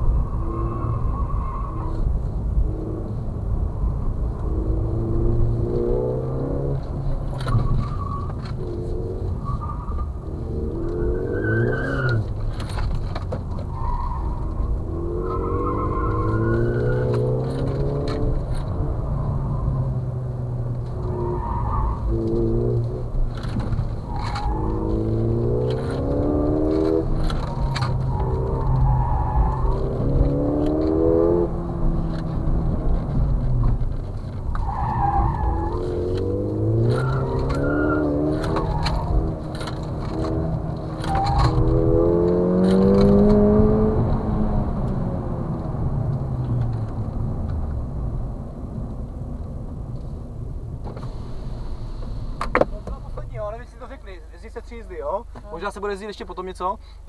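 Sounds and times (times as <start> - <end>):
tyre squeals: 0.0 - 2.1, 7.3 - 12.7, 13.6 - 17.5, 21.0 - 22.4, 23.9 - 30.5, 34.5 - 41.8
car engine revving: 0.0 - 53.5.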